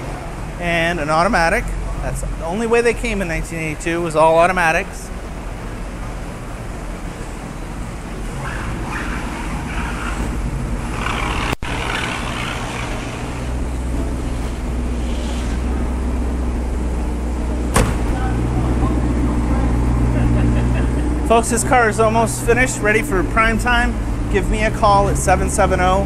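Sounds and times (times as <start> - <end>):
car engine idling: 4.8 - 26.0
sharp knock: 17.7 - 18.2.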